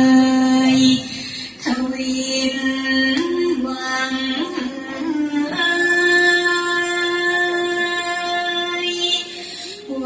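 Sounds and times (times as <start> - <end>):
woman singing slow melody: 0.0 - 10.0.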